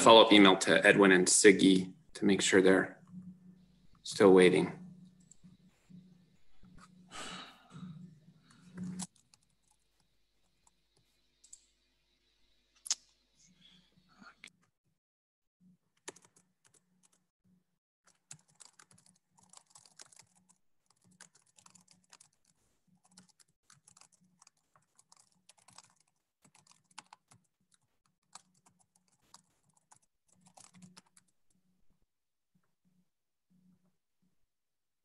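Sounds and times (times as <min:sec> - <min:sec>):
faint keyboard typing: 0:07.7 - 0:11.7, 0:15.9 - 0:17.2, 0:18.1 - 0:31.6.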